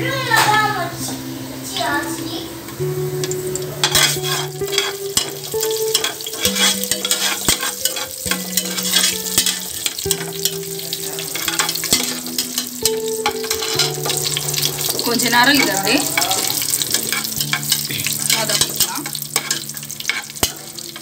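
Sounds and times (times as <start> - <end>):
spices sizzling in hot oil: 0.3 - 21.0
metal spatula scraping pot: 3.8 - 15.0, 15.6 - 21.0.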